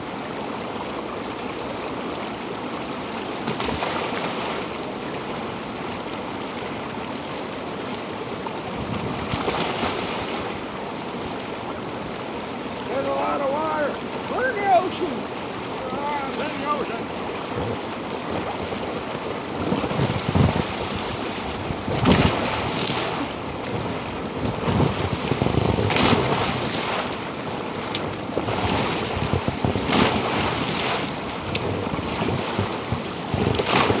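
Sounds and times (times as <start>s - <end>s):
water rushing and sloshing: 0.0s - 34.0s
water splashing: 2.9s - 7.0s, 7.9s - 34.0s
water hitting microphone: 12.8s - 34.0s.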